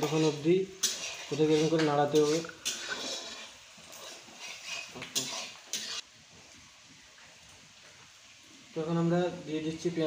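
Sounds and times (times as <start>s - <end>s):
metal spatula scraping pan: 0.0s - 6.1s
faint hiss: 0.0s - 10.0s
onions sizzling in oil: 0.0s - 10.0s.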